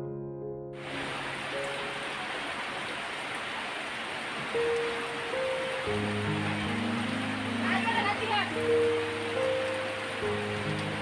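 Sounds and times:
soft keyboard music: 0.0 - 2.7, 4.4 - 11.0
steady rain hiss: 0.8 - 11.0.

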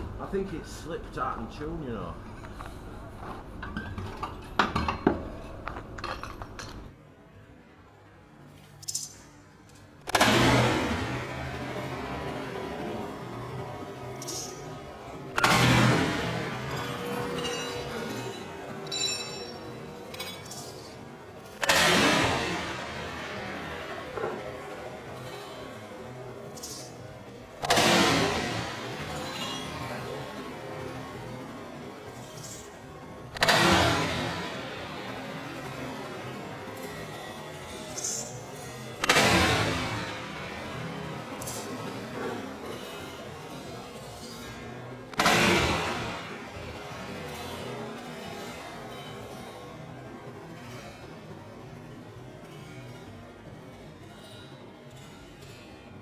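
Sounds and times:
sledgehammer smashing piano: 10.1 - 11.8, 15.4 - 17.7, 27.6 - 29.9, 45.2 - 46.6
debris clinking: 16.2 - 21.1.

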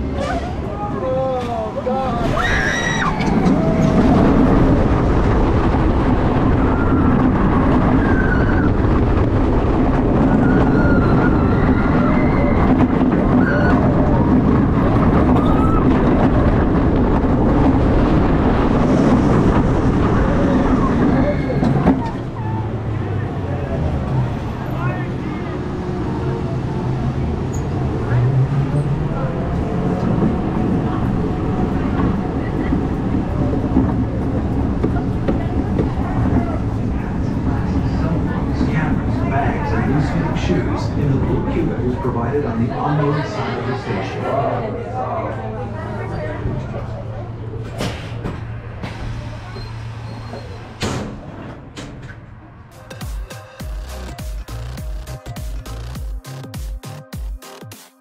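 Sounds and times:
roller coaster wind and track roar: 0.0 - 56.0
riders screaming: 2.1 - 4.3, 10.3 - 12.8.

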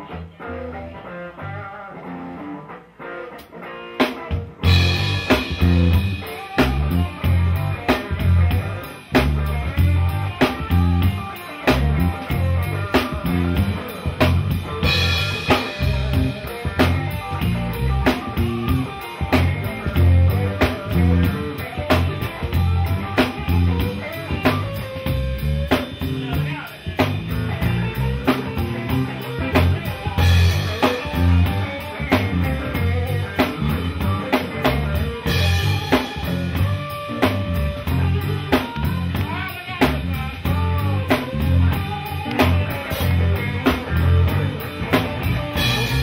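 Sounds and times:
electric bass: 0.0 - 46.0
electric guitar: 0.0 - 46.0
drum kit steady beat: 3.4 - 46.0.

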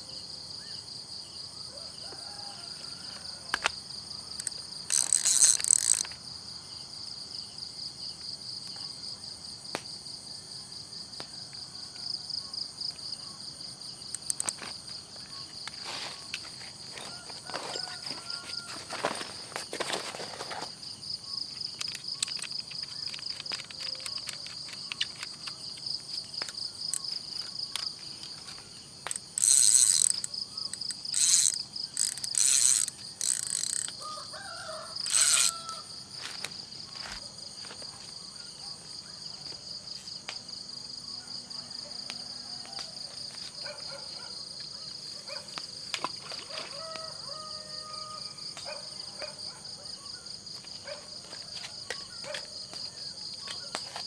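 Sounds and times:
crickets trilling: 0.0 - 54.0.

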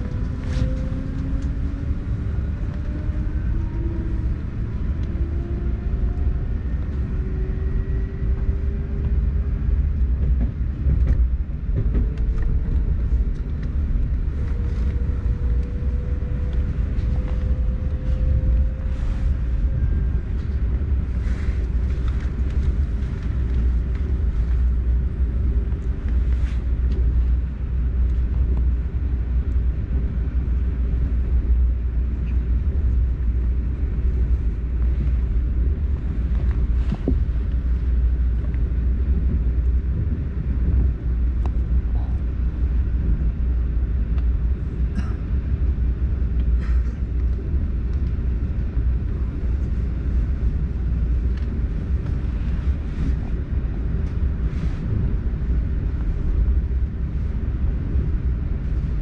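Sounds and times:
train wheels rumbling: 0.0 - 59.0.

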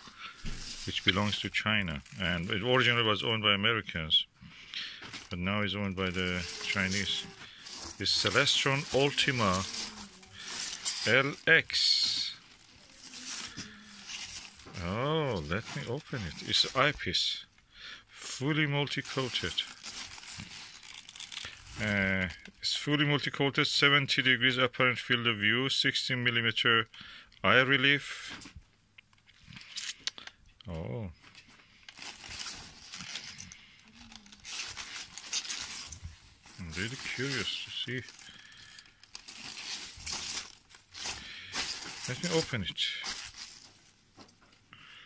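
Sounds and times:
packing peanuts rustling and crinkling: 0.0 - 17.5, 18.4 - 22.5, 31.2 - 44.4.

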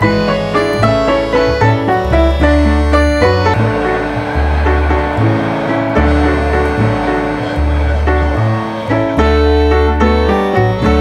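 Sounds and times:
held melodic notes: 0.0 - 11.0
deep bass line: 1.6 - 10.1.

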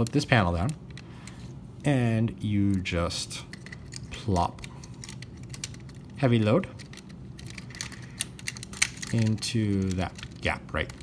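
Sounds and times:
plastic toy parts clicking: 3.5 - 6.2, 6.8 - 11.0.

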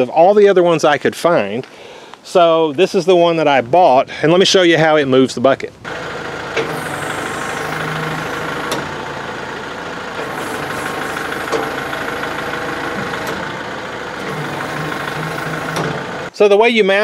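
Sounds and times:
diesel tractor engine idling: 5.8 - 16.4
hydraulics tilting loader bucket: 5.9 - 16.4.

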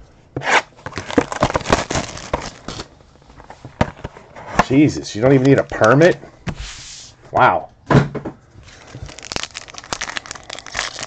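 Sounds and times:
card packs tearing open: 0.8 - 2.9, 8.7 - 11.0.

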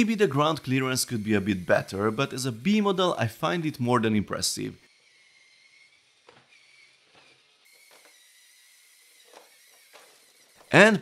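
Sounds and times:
low hiss: 0.0 - 4.8
small electric motors whining: 0.0 - 11.0.

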